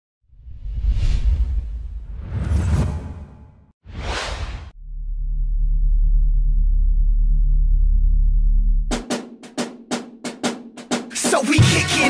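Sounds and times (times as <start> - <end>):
deep synthesized bass note: 4.8 - 8.9.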